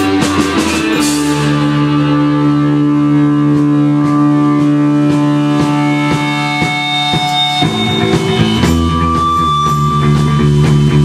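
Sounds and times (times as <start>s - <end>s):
electric guitars sustained chord: 0.0s - 11.0s.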